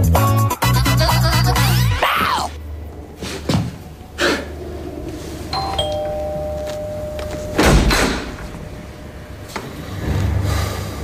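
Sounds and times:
two-note doorbell chime: 5.6s - 7.8s.

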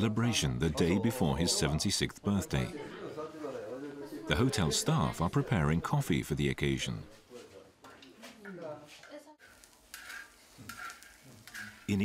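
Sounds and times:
utensils scraping and clinking: 9.4s - 12.0s.

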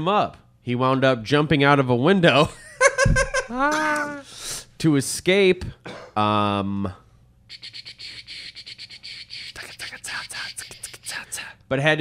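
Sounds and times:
man laughing breathily: 2.8s - 4.3s.

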